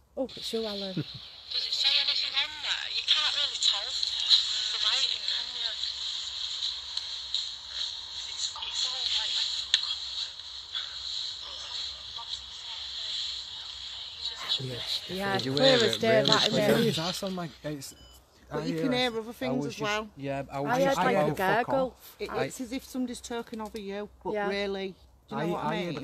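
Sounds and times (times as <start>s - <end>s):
steady high hiss: 0.0s - 18.0s
tinny voices from small speaker: 11.4s - 17.1s.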